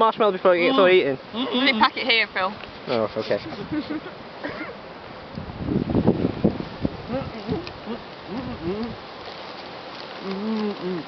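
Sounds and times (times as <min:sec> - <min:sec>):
person humming with full mouth: 0:07.0 - 0:09.0, 0:10.2 - 0:11.0.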